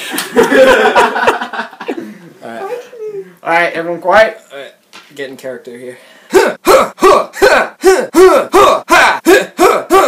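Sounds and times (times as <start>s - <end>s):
man making rapid vocal bursts: 6.3s - 10.0s.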